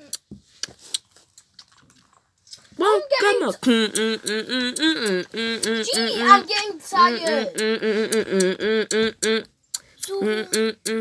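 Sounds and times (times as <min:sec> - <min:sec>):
child's voice: 0:02.8 - 0:03.7, 0:05.6 - 0:07.6, 0:10.0 - 0:10.7.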